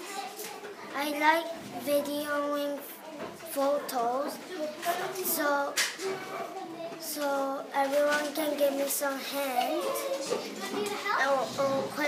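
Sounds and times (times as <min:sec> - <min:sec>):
boy speaking: 0:00.0 - 0:12.0.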